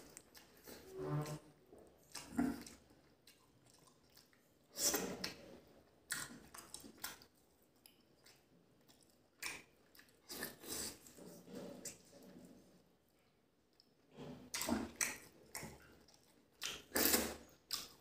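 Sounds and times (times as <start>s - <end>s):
wet chewing: 0.0s - 0.8s, 2.0s - 5.5s, 6.1s - 12.2s, 13.7s - 18.0s.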